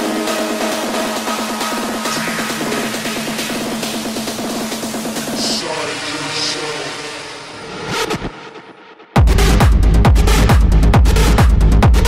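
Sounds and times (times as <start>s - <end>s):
rushing noise sweep: 1.6s - 8.6s.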